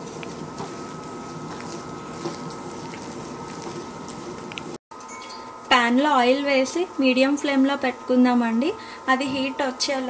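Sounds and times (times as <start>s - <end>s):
hands squishing wet batter: 0.0s - 4.6s.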